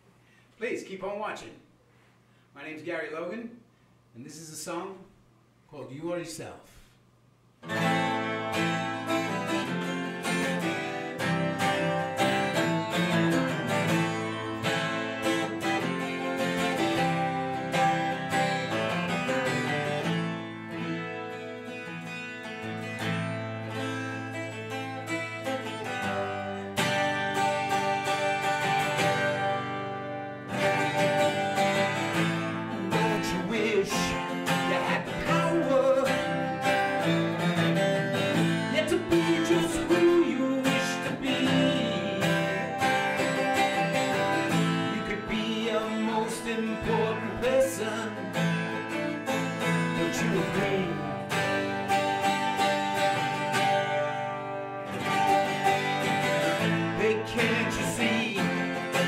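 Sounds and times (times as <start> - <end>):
acoustic guitar picked chords: 7.6 - 59.0.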